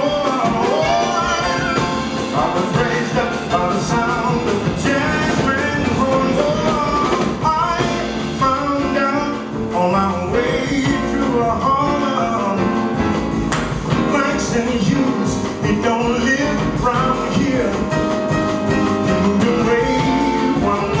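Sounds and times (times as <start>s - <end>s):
man singing in deep baritone: 0.0s - 13.1s, 13.9s - 18.4s, 19.0s - 21.0s
jazz band accompaniment: 0.0s - 21.0s
plucked double bass: 0.0s - 21.0s.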